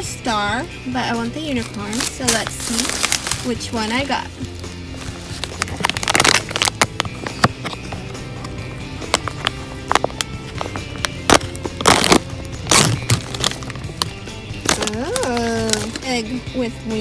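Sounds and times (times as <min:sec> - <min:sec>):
background music: 0:00.0 - 0:17.0
scissors snipping foil bag: 0:01.1 - 0:07.8, 0:11.0 - 0:16.1
foil crinkling and rustling: 0:01.2 - 0:07.8, 0:09.1 - 0:16.1.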